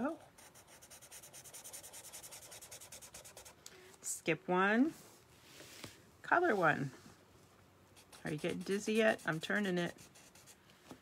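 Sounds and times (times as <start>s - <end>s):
marker scribbling on paper: 0.4s - 3.6s, 8.0s - 10.6s.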